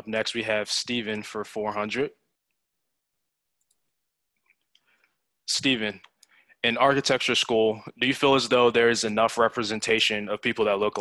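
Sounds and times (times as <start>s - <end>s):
person speaking: 5.4s - 11.0s.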